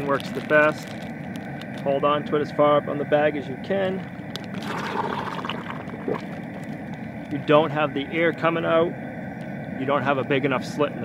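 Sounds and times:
hot water sloshing in a pot: 4.1s - 7.2s.

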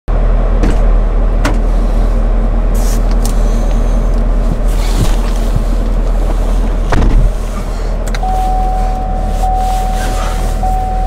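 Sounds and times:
car engine idling: 0.1s - 11.0s.

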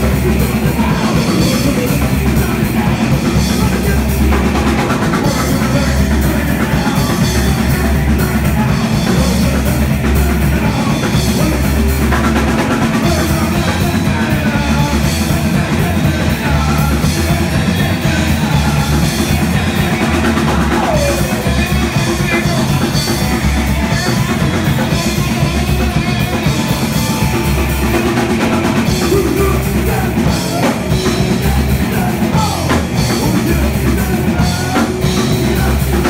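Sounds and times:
distorted electric guitars: 0.0s - 36.0s
drum kit: 0.0s - 36.0s
live rock band playing: 0.0s - 36.0s.

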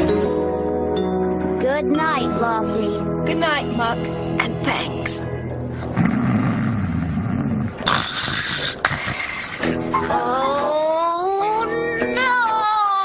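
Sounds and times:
gentle background music: 0.0s - 6.0s, 9.6s - 13.0s
cartoon snoring: 5.9s - 10.2s.

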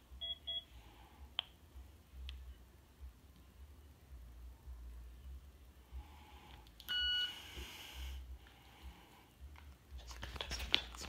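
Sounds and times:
short electronic beep: 6.9s - 7.4s.

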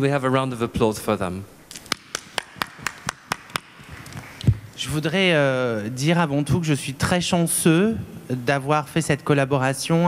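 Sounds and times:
hands clapping: 1.7s - 4.6s.

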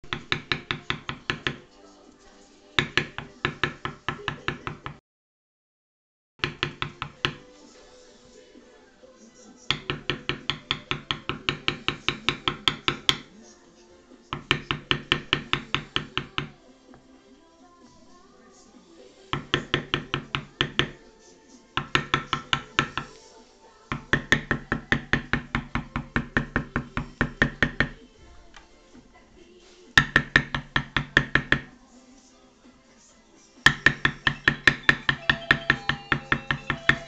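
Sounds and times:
mallet tapping stamping tool: 0.0s - 1.7s, 2.8s - 5.0s, 6.4s - 7.4s, 9.7s - 13.3s, 14.3s - 16.6s, 19.3s - 21.0s, 21.8s - 23.2s, 23.9s - 28.0s, 30.0s - 31.7s, 33.7s - 37.0s
hammer tapping stamp: 6.4s - 7.4s, 9.7s - 13.3s, 21.8s - 23.2s, 30.0s - 31.7s, 33.7s - 37.0s.

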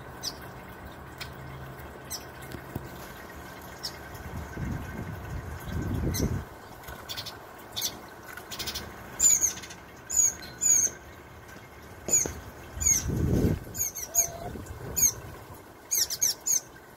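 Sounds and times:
fountain trickling: 0.0s - 16.9s
birds chirping: 5.6s - 16.8s.

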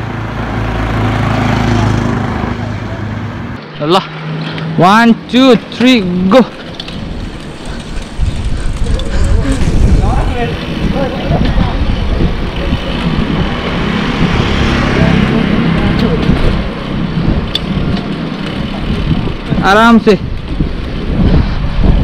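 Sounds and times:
bike tyres rolling on asphalt: 4.0s - 22.0s
wind rushing over microphone: 5.4s - 22.0s.

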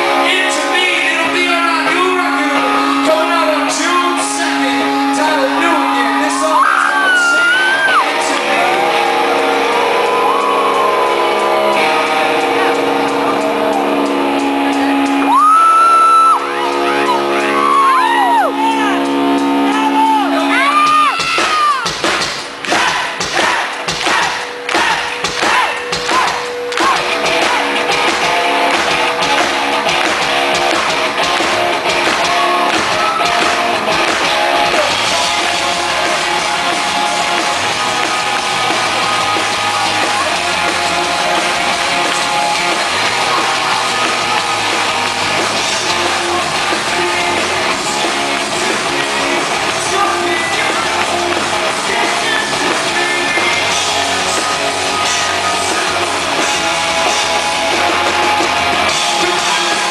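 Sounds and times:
person singing: 0.0s - 19.7s, 45.6s - 59.9s
held guitar chords: 0.0s - 59.9s
live rock band: 0.0s - 59.9s.

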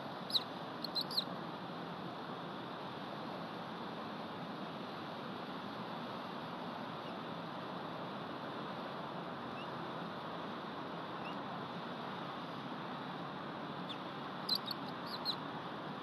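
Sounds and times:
steady outdoor hiss: 0.0s - 16.0s
faint bird chirps: 0.2s - 1.3s, 9.5s - 9.8s, 11.2s - 11.4s, 13.8s - 15.4s
short high bird calls: 0.3s - 1.3s, 13.9s - 15.4s.

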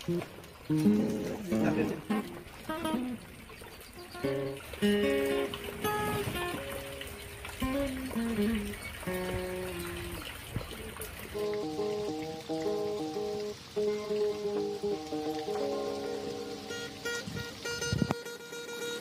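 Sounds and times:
acoustic guitar picking: 0.0s - 19.0s.

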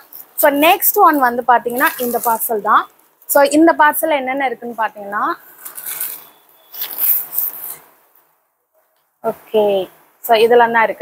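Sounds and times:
plastic packaging crinkling: 1.0s - 3.3s, 5.5s - 7.8s.

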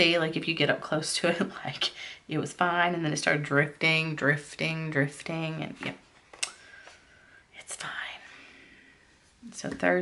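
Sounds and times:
soft hiss: 5.8s - 10.0s.

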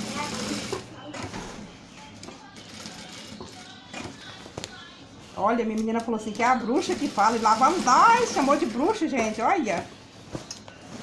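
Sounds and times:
industrial sewing machine stitching: 0.0s - 0.9s, 6.8s - 8.9s.

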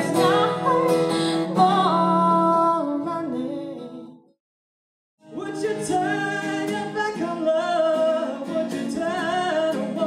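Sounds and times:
strummed acoustic guitar: 0.0s - 2.4s, 5.2s - 10.0s
woman singing: 0.0s - 4.2s.

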